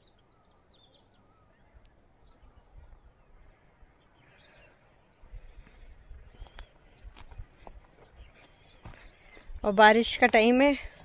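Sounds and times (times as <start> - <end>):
faint bird chirp: 0.0 - 11.0
wind buffeting microphone: 5.2 - 11.0.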